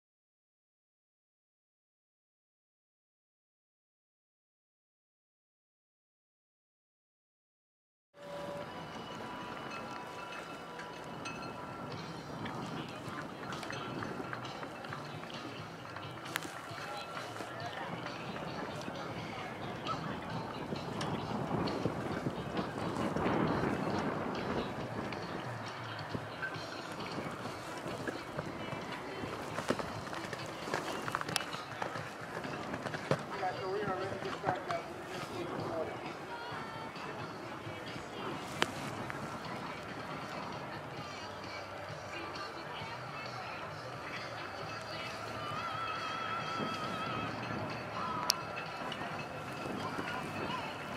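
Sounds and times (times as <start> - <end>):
faint high ringing tones: 8.2 - 12.2
steady outdoor background noise: 8.2 - 50.9
background voices: 8.4 - 50.9
horse hoofbeats on sand: 9.4 - 41.2.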